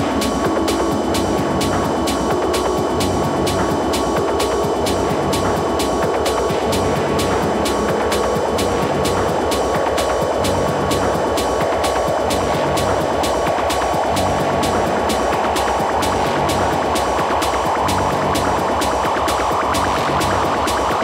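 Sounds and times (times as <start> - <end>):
dense synth layer: 0.0 - 21.0
hi-hat ticks: 0.0 - 21.0
techno beat: 0.0 - 21.0.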